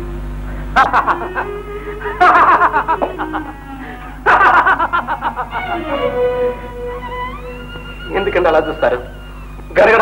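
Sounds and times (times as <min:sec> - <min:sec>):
soft film music: 0:00.0 - 0:10.0
man laughing: 0:00.8 - 0:06.3.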